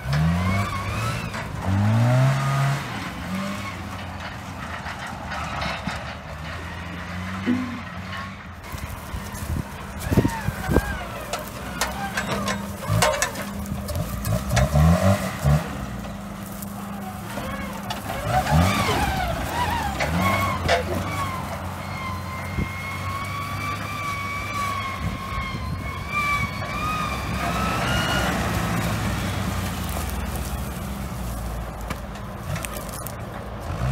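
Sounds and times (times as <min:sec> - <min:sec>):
car engine revving: 0:00.0 - 0:05.7, 0:06.5 - 0:33.9.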